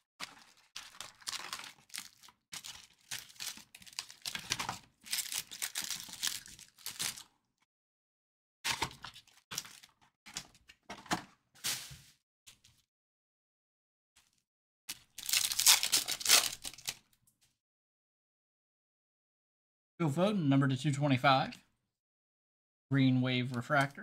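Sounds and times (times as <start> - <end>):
foil packs crinkling: 0.2 - 7.3, 14.9 - 17.0.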